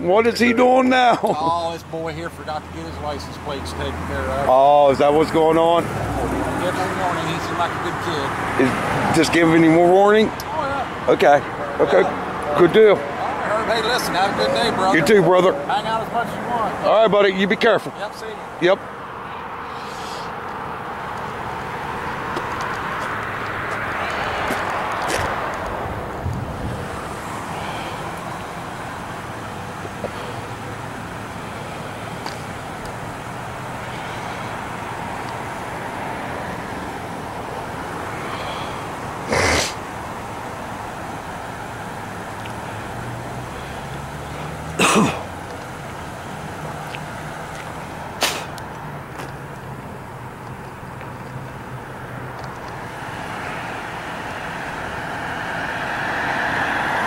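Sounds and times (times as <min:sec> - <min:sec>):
traffic hum: 0:00.0 - 0:57.0
person coughing: 0:44.8 - 0:45.3.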